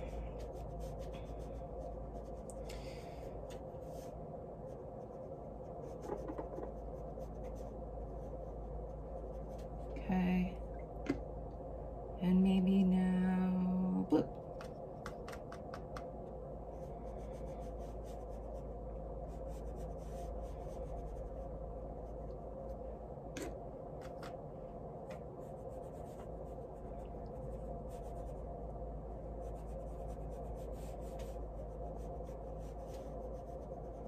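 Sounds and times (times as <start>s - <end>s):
low hum: 0.0s - 34.0s.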